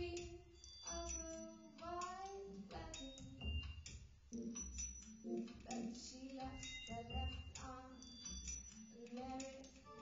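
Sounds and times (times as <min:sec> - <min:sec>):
woman singing: 0:00.0 - 0:03.4, 0:05.6 - 0:08.1, 0:08.9 - 0:10.0
sparse electronic backing: 0:00.0 - 0:10.0.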